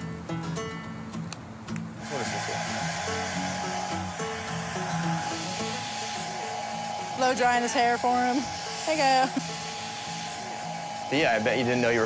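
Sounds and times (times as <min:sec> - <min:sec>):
hair dryer blowing: 0:02.0 - 0:12.0.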